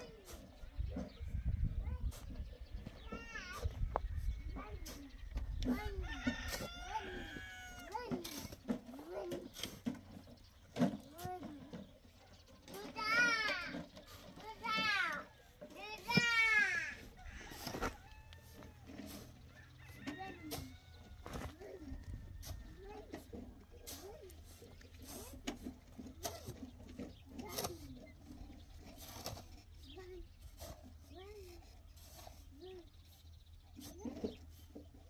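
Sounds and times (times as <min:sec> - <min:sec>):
chickens calling: 0:00.0 - 0:35.0
rooster crowing: 0:06.0 - 0:07.9.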